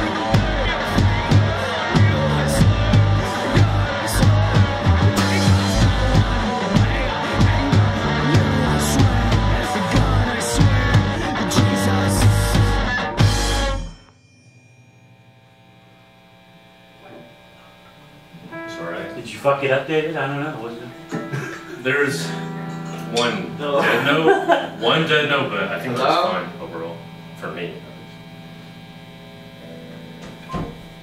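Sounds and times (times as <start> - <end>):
electrical hum from amplifiers: 0.0 - 31.0
instrument note: 18.5 - 23.7.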